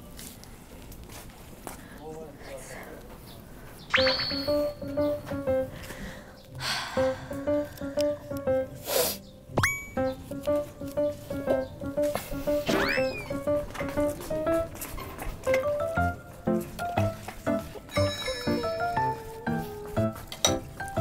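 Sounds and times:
whistle-like effect: 0:03.9 - 0:04.8
bouncy plucked background music: 0:03.9 - 0:06.1, 0:07.3 - 0:08.8, 0:09.5 - 0:21.0
quick upward squeak: 0:12.7 - 0:13.4.

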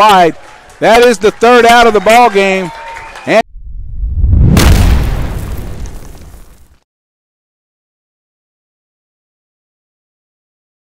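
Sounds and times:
deep cinematic boom: 0:03.5 - 0:06.6.

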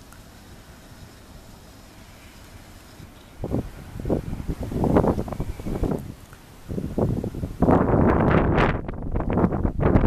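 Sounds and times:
wind buffeting microphone: 0:02.0 - 0:10.0.

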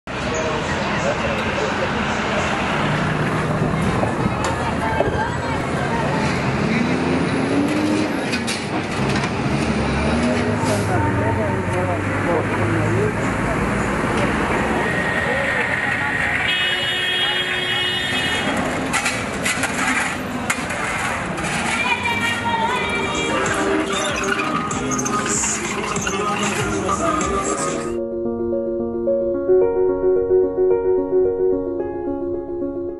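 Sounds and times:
traffic: 0:00.1 - 0:28.0
sharp knocks and scrapes: 0:18.8 - 0:22.1.

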